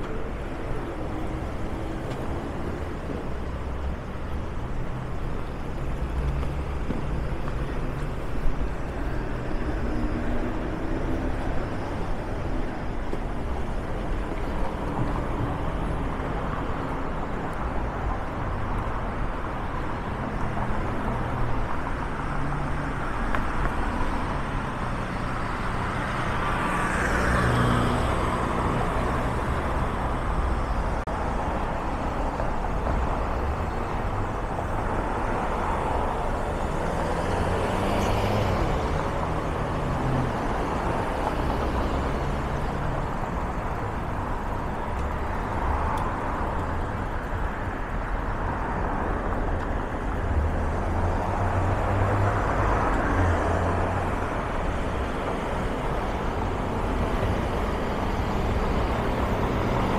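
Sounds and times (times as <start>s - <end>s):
road traffic hum: 0.0s - 59.9s.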